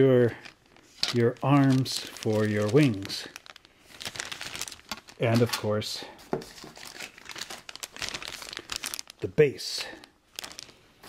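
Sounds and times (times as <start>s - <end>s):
plastic bags crinkling: 0.2s - 11.0s.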